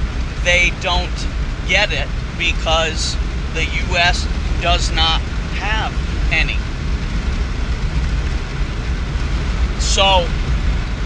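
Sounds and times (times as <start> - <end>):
engine and tyres rumbling: 0.0 - 11.0.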